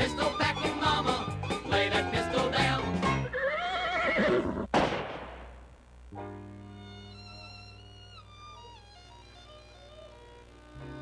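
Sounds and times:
horse whinny: 0:03.2 - 0:04.7
sharp crash: 0:04.7 - 0:05.7.

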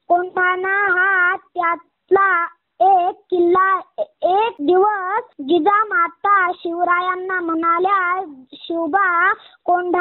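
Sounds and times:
child singing: 0:00.0 - 0:10.0.

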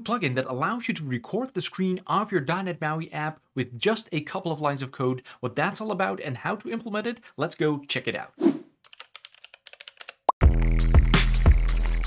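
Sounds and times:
computer keyboard typing clicks: 0:08.9 - 0:10.2
electronic music with bass and beat: 0:10.4 - 0:12.0.

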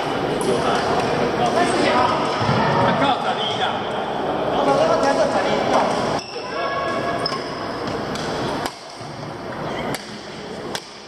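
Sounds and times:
indistinct chatter echoing: 0:00.0 - 0:11.0
rackets hitting shuttlecocks: 0:07.8 - 0:09.2, 0:09.8 - 0:11.0.

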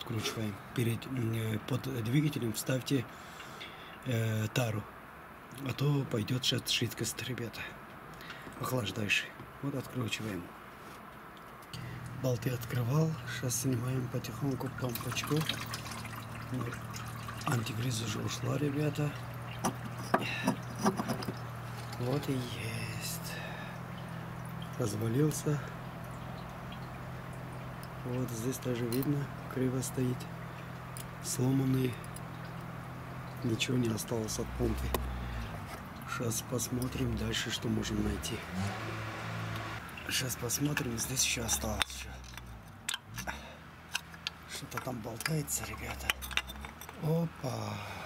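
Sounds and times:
low steady hum: 0:11.4 - 0:48.0
sharp clicks and knocks: 0:19.5 - 0:22.2.

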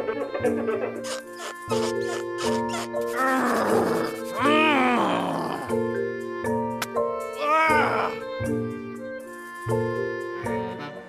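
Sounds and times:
background music: 0:00.0 - 0:11.0
cartoon character groaning: 0:01.1 - 0:05.9, 0:07.4 - 0:08.2.

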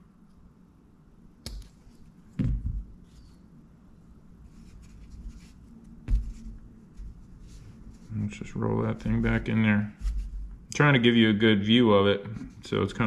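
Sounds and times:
hands rustling soft plastic: 0:04.4 - 0:10.6.

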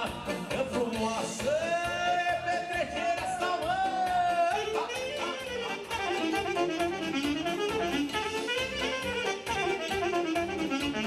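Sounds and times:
party band with keyboard and saxophone: 0:00.0 - 0:11.0.

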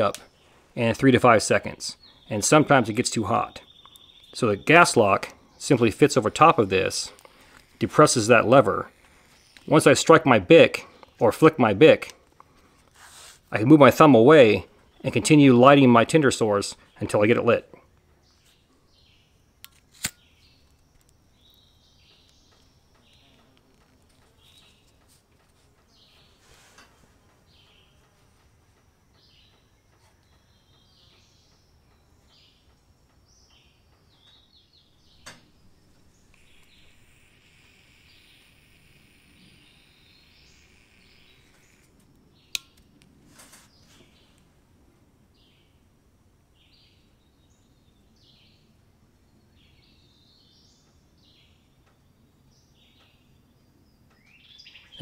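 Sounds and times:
faint bird chirping: 0:00.0 - 0:13.6, 0:14.4 - 0:44.6, 0:46.5 - 0:55.0
soft hiss: 0:00.0 - 0:16.0, 0:16.7 - 0:53.2
sharp click: 0:19.6 - 0:21.2, 0:36.3 - 0:43.1.

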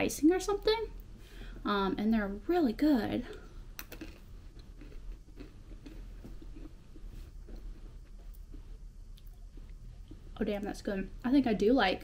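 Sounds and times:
chewing crunchy biscuit: 0:03.8 - 0:10.4.

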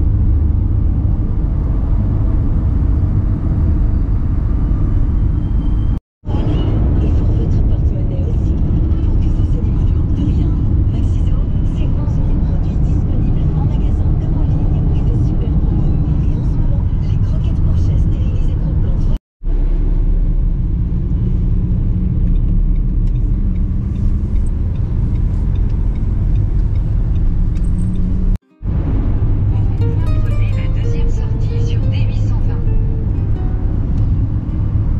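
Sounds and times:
car road and engine noise: 0:00.0 - 0:34.9.

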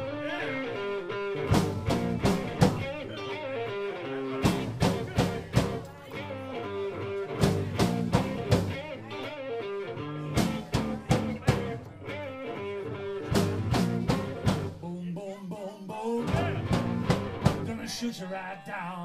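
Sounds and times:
blues-rock band playing: 0:00.0 - 0:14.8, 0:16.2 - 0:17.8
hard accented band hits: 0:13.3 - 0:14.8, 0:16.3 - 0:17.7.

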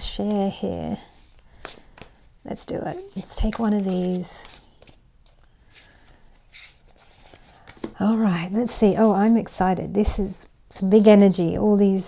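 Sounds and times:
cards rustling being fanned: 0:00.1 - 0:08.0
soft card slides: 0:05.7 - 0:07.9.

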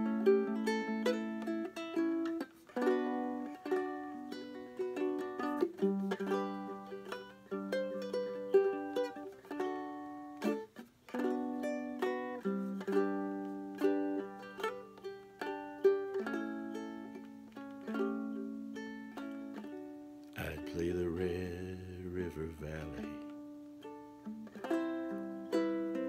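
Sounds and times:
ukulele strumming chords: 0:00.0 - 0:26.0.

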